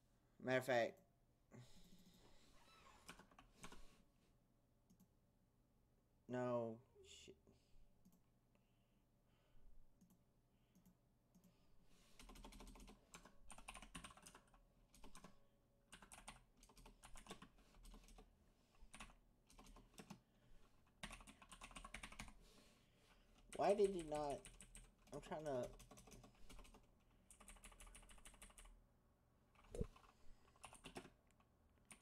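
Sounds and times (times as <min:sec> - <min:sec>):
faint keyboard typing: 0:03.0 - 0:03.9, 0:04.8 - 0:05.1, 0:08.0 - 0:08.3, 0:09.9 - 0:11.6, 0:12.2 - 0:22.4, 0:23.3 - 0:28.8, 0:29.5 - 0:32.0.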